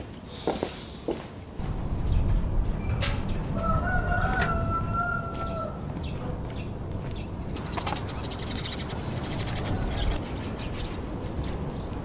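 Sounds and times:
birds chirping: 1.4s - 12.0s
low outdoor rumble: 1.5s - 12.0s.

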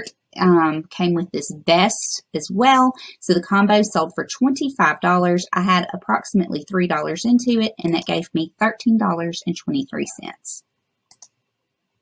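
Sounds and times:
computer mouse clicks: 11.0s - 11.4s.

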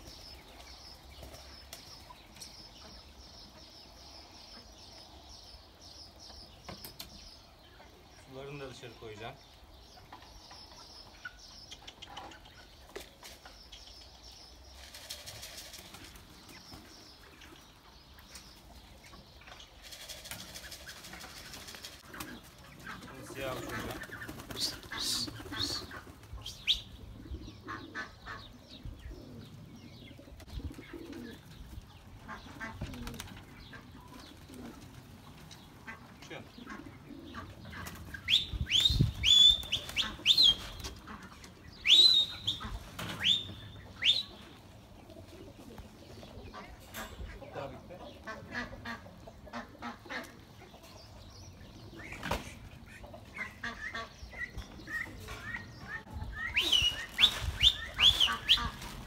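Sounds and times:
pigeons cooing: 19.7s - 50.9s.

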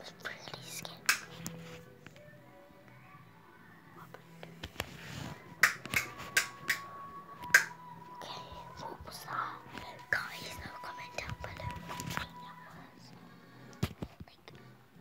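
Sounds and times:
person whispering: 0.0s - 1.8s, 8.1s - 13.0s.

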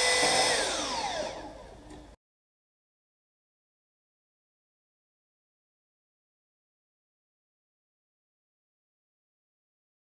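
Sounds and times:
cordless drill whining: 0.0s - 1.7s.

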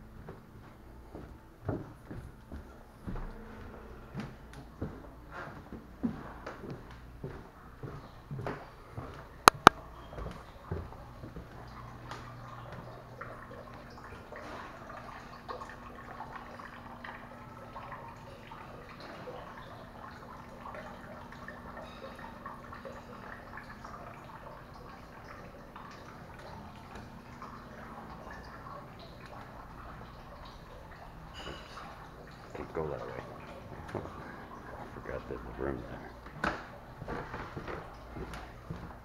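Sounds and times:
fountain water trickling: 10.5s - 39.0s.

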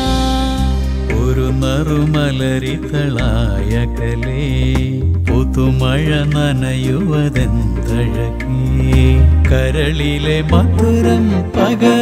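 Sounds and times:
low steady accompaniment: 0.0s - 12.0s
man singing ornamented melody: 0.0s - 12.0s.

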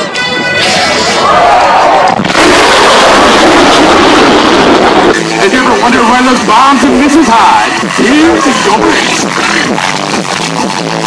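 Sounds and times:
jet passing loudly: 1.9s - 5.5s.

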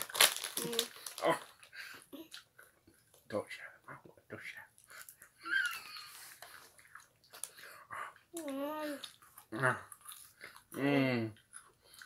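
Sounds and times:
popcorn crunching: 0.0s - 1.7s
child saying uh: 0.6s - 0.9s, 8.3s - 9.0s
child humming mmm: 8.3s - 9.0s.

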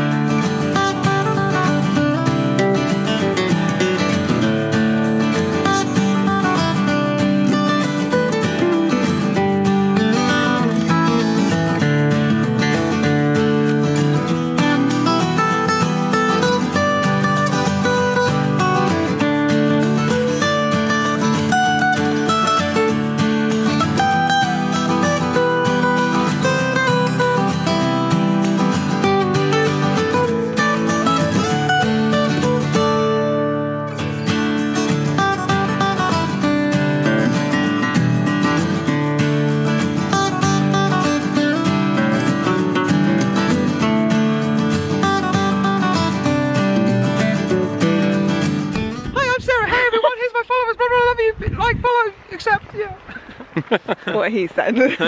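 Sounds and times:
acoustic guitar music: 0.0s - 55.0s
person speaking: 48.8s - 53.1s, 53.9s - 55.0s.

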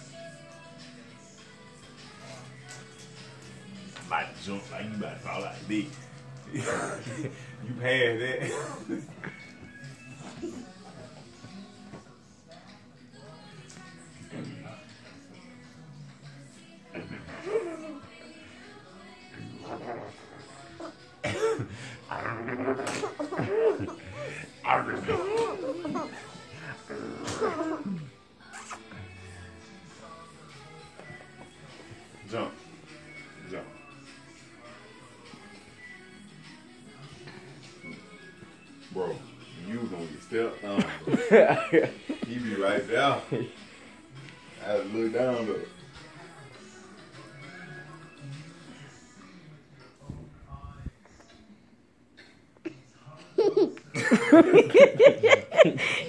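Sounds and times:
squealing vocal call: 19.4s - 21.0s, 22.0s - 23.9s, 24.9s - 29.1s.

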